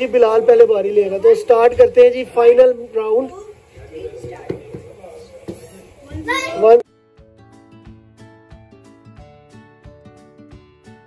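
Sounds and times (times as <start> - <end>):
child shouting excitedly: 6.1 - 6.8.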